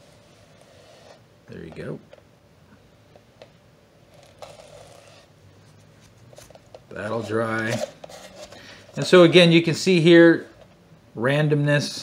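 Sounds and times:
soft cloth rub: 0:04.1 - 0:09.2.

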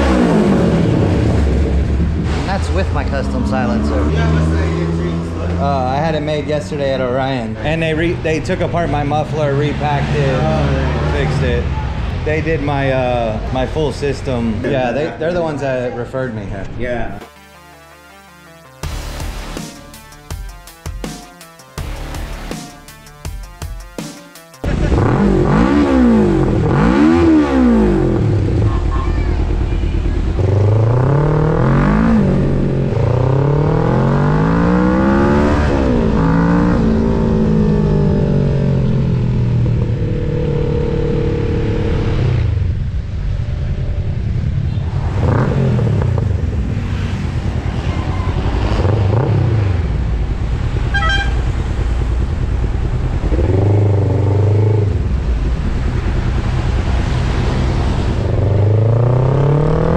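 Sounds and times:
motorcycle engine revving: 0:00.0 - 0:14.8, 0:24.6 - 0:59.9.

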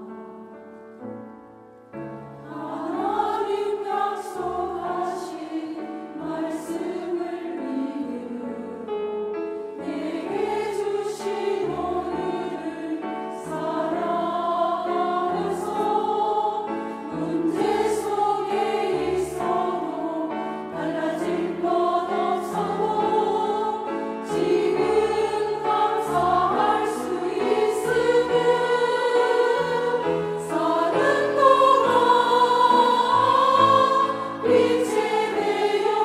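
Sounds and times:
women's choir singing a hymn: 0:02.4 - 0:36.0.

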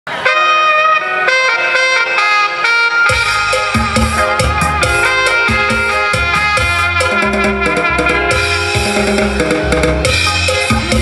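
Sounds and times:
reedy wind instrument long notes: 0:00.1 - 0:11.0.

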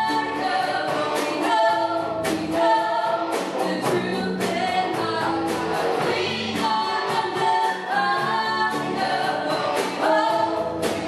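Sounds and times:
amplified electric guitars: 0:00.0 - 0:11.0
women singing into microphones: 0:00.0 - 0:11.0.

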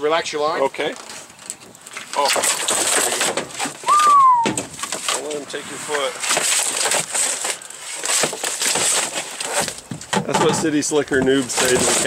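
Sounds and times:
fish thrashing on metal boat deck: 0:01.3 - 0:05.4, 0:06.2 - 0:12.0.

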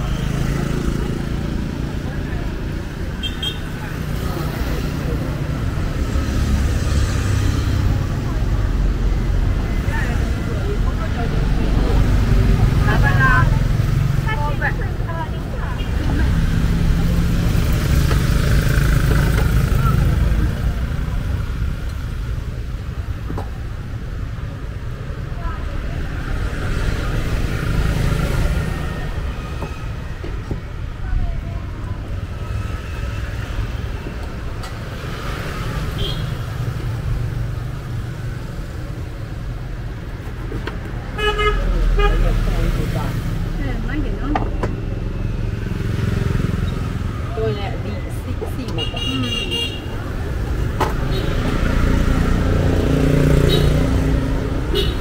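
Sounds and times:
traffic engines running: 0:00.0 - 0:55.0
vehicle horn tooting: 0:03.2 - 0:03.7.

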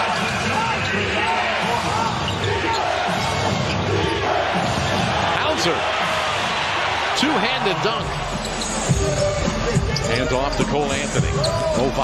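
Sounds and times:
arena crowd noise: 0:00.0 - 0:12.0
sneakers squeaking on court: 0:00.1 - 0:03.9, 0:08.2 - 0:11.8.

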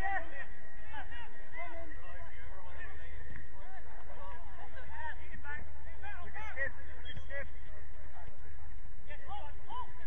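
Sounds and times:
distant players shouting: 0:00.0 - 0:10.0.

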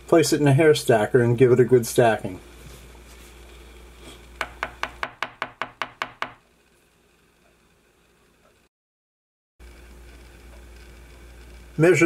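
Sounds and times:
hair stacker tapping on hard surface: 0:04.4 - 0:06.4.

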